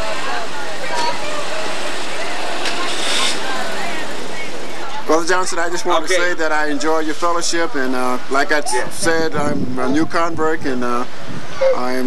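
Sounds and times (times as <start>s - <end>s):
distant voices talking: 0.0s - 12.0s
steady loud noise: 0.0s - 12.0s
short hissing burst: 2.7s - 3.6s.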